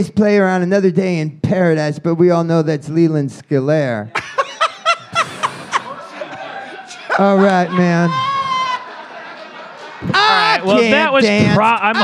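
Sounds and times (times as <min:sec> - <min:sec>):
person chuckling: 0:04.2 - 0:08.2.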